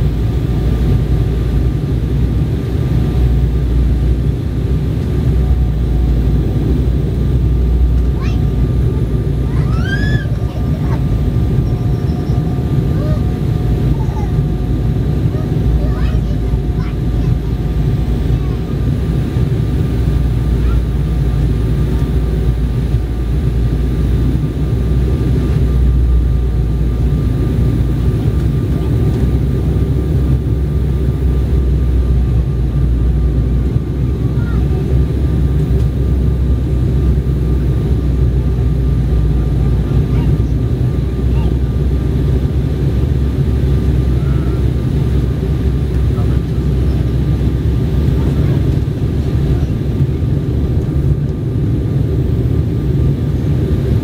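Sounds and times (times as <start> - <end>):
airliner cabin rumble: 0.0 - 54.0.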